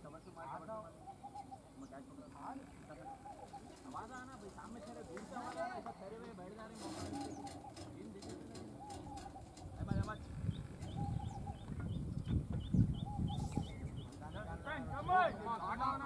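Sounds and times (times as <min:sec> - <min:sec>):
faint distant voices: 0:00.0 - 0:16.0.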